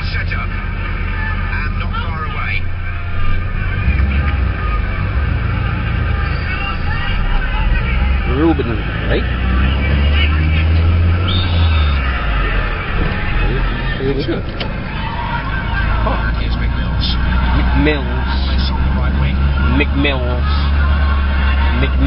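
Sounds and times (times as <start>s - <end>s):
commentator speaking: 0.0s - 4.6s, 6.8s - 12.3s, 12.9s - 20.9s, 21.6s - 22.0s
broadcast crowd noise: 0.0s - 22.0s
car cabin rumble: 1.2s - 22.0s.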